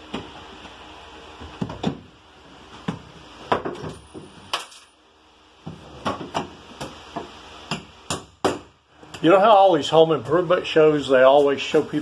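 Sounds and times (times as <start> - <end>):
hammer striking wall panel: 7.7 - 8.7.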